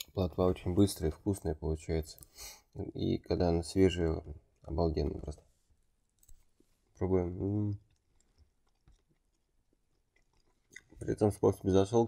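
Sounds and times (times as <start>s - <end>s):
soft clicks and crackles of eating: 0.0s - 0.3s, 2.0s - 2.4s, 6.0s - 11.7s.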